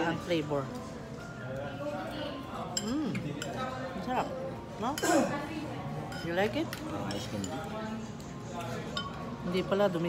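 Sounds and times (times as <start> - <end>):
faint background music: 0.0 - 10.0
dishes and cutlery clinking: 2.0 - 10.0.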